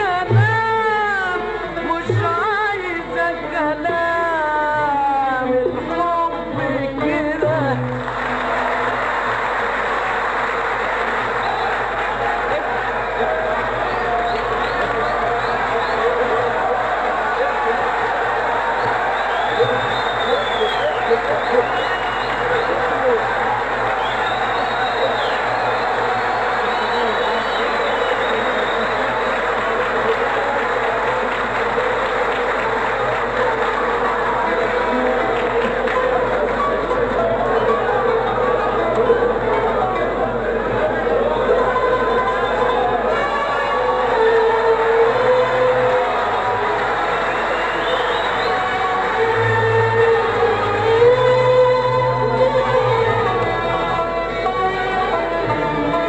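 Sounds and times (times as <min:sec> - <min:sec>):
orchestra playing violins and oud: 0:00.0 - 0:56.0
audience applause and cheering: 0:07.4 - 0:56.0.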